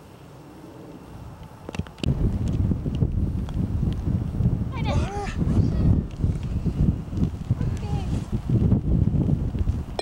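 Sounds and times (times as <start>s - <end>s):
wind buffeting microphone: 1.2s - 10.0s.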